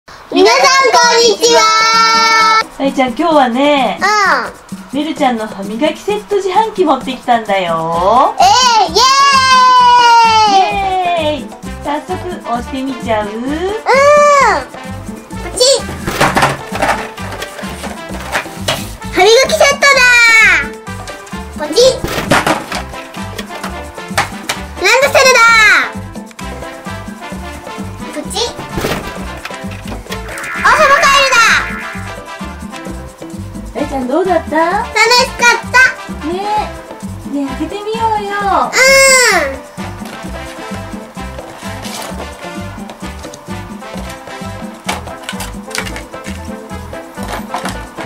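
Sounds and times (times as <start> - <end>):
background music with steady beat: 1.0 - 48.0
girl calling out: 13.8 - 14.7, 38.7 - 39.6
voice-like rising tone: 30.2 - 32.5.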